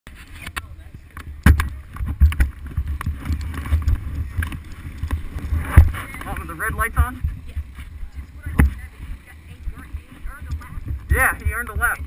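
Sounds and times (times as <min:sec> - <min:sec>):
camera handling rumble: 0:00.2 - 0:06.5.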